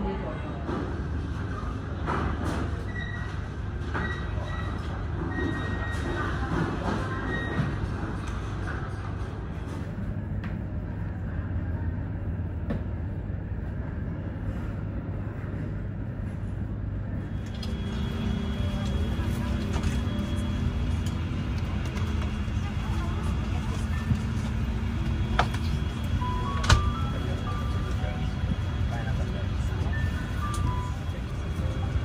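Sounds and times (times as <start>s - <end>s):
faint passenger voices: 0.0s - 32.0s
aircraft cabin air hum: 7.9s - 32.0s.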